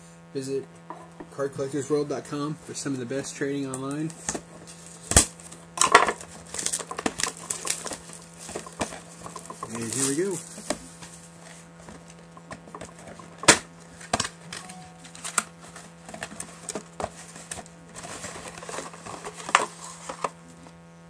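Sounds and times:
steady low hum: 0.0 - 21.0
cardboard box clicks and rustles: 6.4 - 14.3, 15.0 - 20.4.

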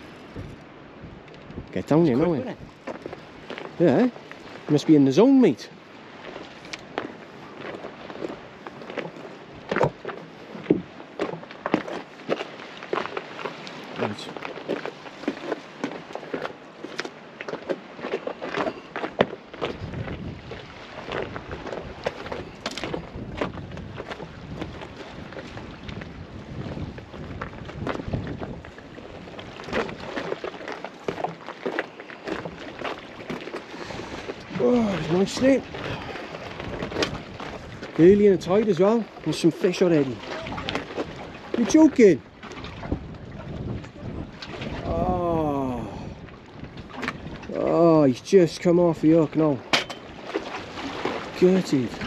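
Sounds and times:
wind buffeting microphone: 0.0 - 12.1, 18.9 - 31.4, 32.2 - 52.0
waves lapping against rocks: 0.0 - 52.0
sharp clicks and splashes: 6.2 - 52.0.

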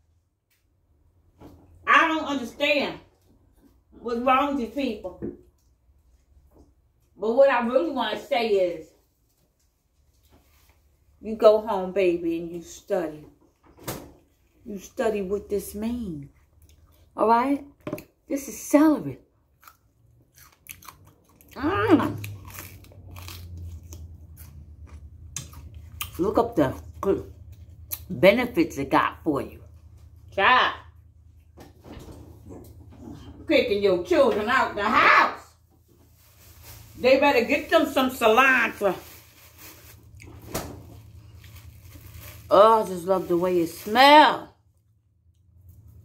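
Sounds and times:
celery crunching: 19.5 - 28.1, 35.8 - 44.3
plastic bag rustling: 35.6 - 44.5.

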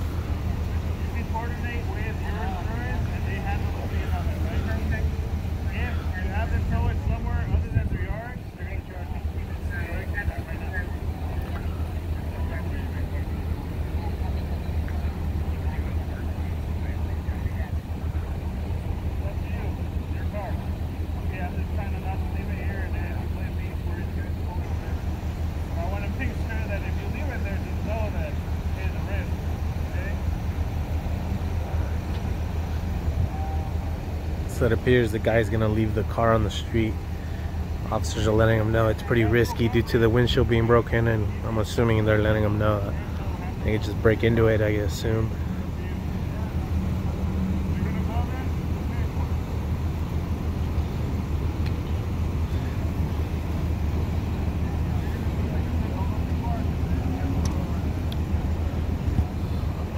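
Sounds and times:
distant people talking: 0.0 - 59.9
engines idling: 0.0 - 59.9.

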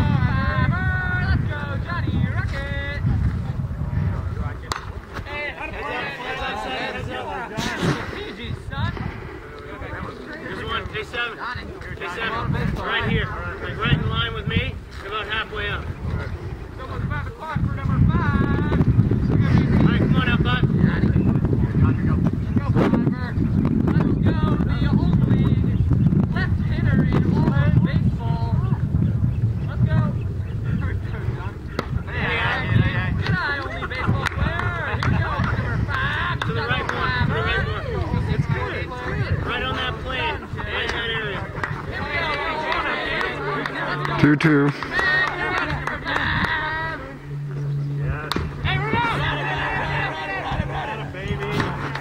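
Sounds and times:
wind rumble on microphone: 0.0 - 52.0
ballplayers yelling and cheering: 4.6 - 9.0, 30.8 - 52.0
baseball bat cracking ball: 4.7 - 5.0, 48.3 - 48.6
crowd shouting: 5.4 - 7.9, 32.1 - 47.4, 48.0 - 52.0.

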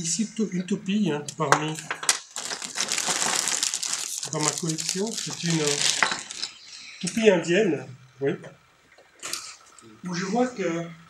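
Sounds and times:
crinkling and rustling: 1.7 - 6.6.

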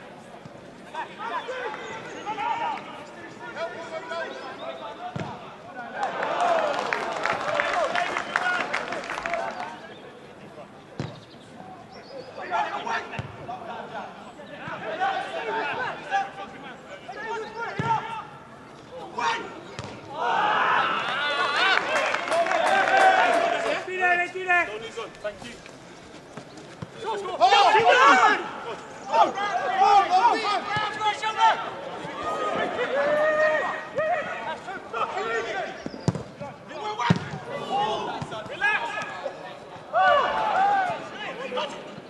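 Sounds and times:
players and spectators shouting: 0.9 - 9.8, 12.3 - 25.1, 27.0 - 42.0
football kicked thud: 5.1 - 5.4, 11.0 - 11.2, 13.2 - 13.4, 36.0 - 36.4
people shouting: 20.1 - 21.8, 27.1 - 35.7, 39.9 - 41.4.

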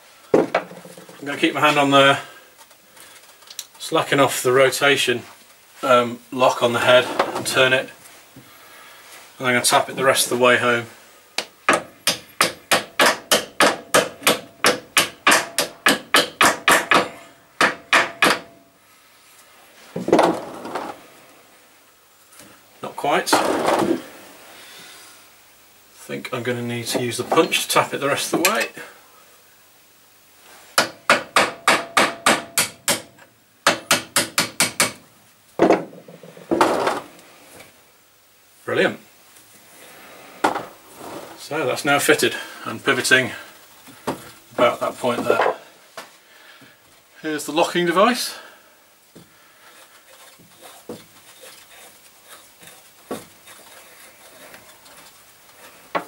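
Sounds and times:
metal clunk and scrape: 7.0 - 7.6
scuffling noise: 49.6 - 55.9.

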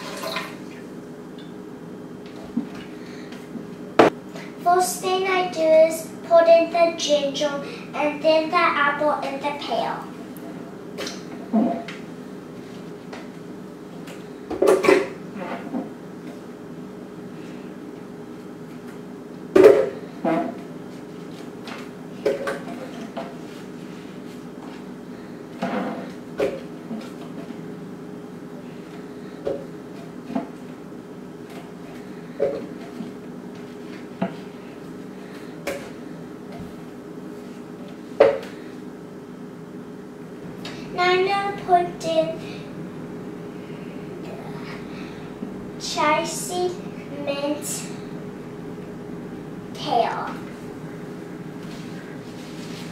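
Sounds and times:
steady low hum: 0.0 - 52.9.

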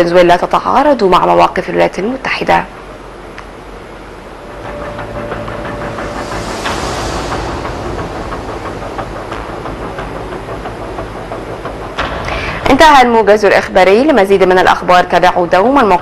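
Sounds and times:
steady rumbling hiss: 0.0 - 16.0.

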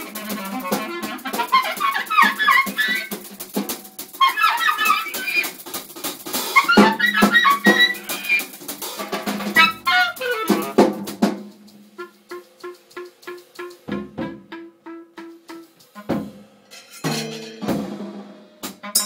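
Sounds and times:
drum and cymbal strikes: 0.0 - 19.0
clarinet phrases: 9.6 - 10.8, 12.0 - 16.2.

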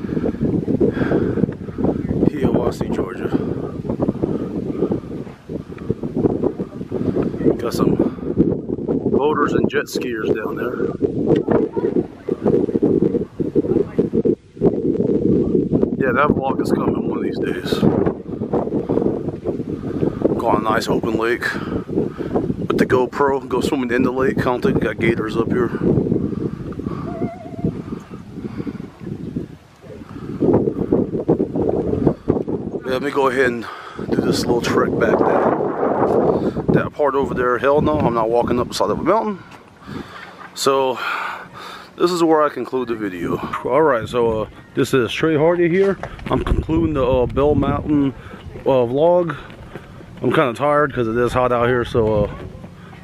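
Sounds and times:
wind buffeting microphone: 0.0 - 53.0.

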